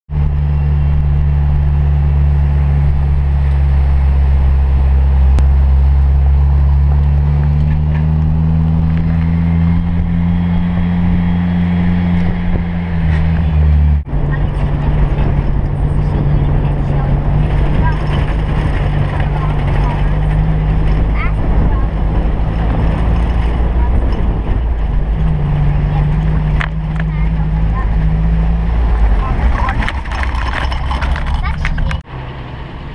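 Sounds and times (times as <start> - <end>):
vehicle engine running: 0.1 - 32.9
vehicle jolting on dirt track: 0.2 - 32.5
rattles: 12.1 - 32.0.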